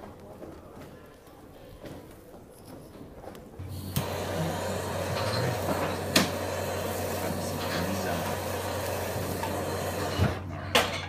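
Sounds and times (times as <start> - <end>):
kitchen torch hissing: 3.6 - 11.0.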